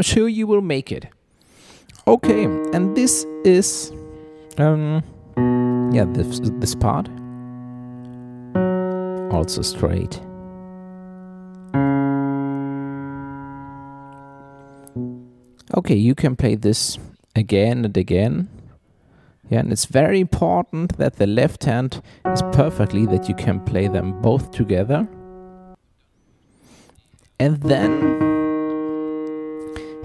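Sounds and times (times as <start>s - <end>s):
piano low bass notes: 2.2s - 15.5s, 22.2s - 25.8s, 27.6s - 30.0s.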